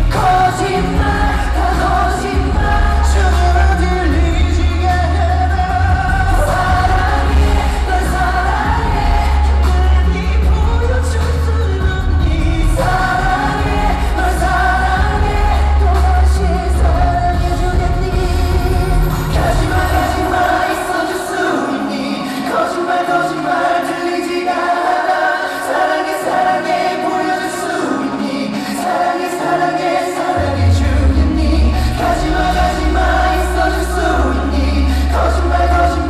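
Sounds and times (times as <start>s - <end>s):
deep bass: 0.0s - 20.4s, 30.6s - 36.0s
backing track: 0.0s - 36.0s
men singing a pop ballad: 0.0s - 36.0s.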